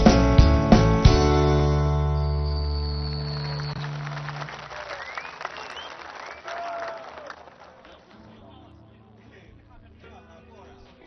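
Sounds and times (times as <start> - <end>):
crowd whistling: 1.9 - 8.1
crowd applause: 2.2 - 8.6.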